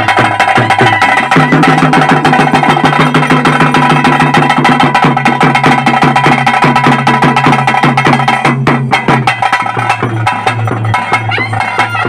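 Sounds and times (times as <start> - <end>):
fast drumbeats: 0.0 - 12.0.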